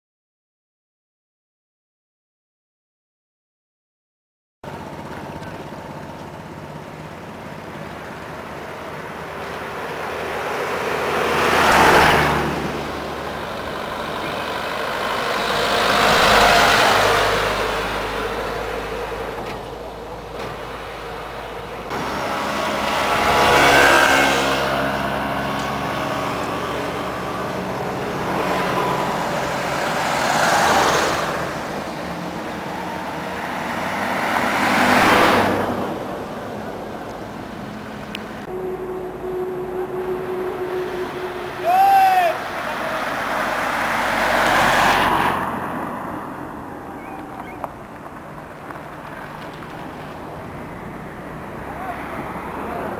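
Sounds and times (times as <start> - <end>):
vehicles passing: 4.6 - 52.9
motorbike passing: 4.7 - 52.9.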